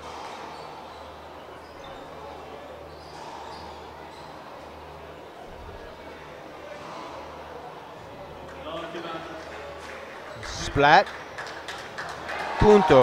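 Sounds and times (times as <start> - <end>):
voices: 0.9 - 11.1.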